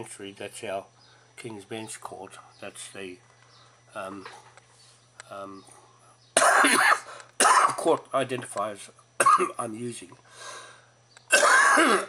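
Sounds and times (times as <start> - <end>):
man coughing: 6.4 - 7.9, 9.2 - 9.6, 11.3 - 12.0
faint breath in: 10.3 - 11.0.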